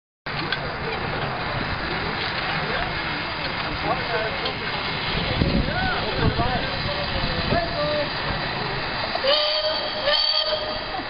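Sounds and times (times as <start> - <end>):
steam tractor hissing: 0.4 - 11.0.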